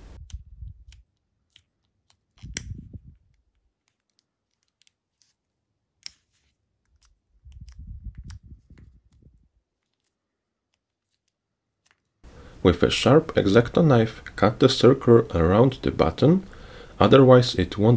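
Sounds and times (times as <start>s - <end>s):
pocket lighter flame burning: 0.1s - 3.0s.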